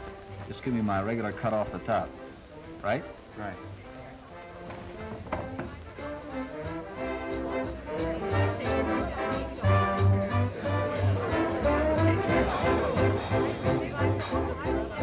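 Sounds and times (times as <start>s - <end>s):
dance-band music with brass: 5.8s - 15.0s.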